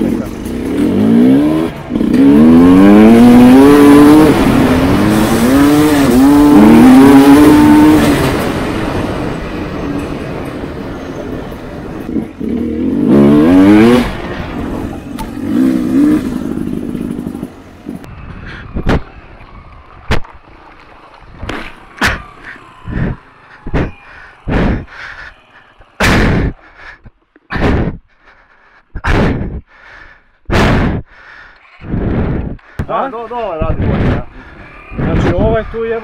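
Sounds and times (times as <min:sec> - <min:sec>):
motorcycle accelerating hard: 0:00.0 - 0:28.0, 0:31.6 - 0:36.0.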